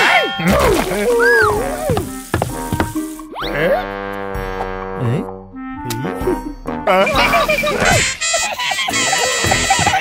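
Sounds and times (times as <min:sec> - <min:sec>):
cartoon soundtrack music: 0:00.0 - 0:10.0.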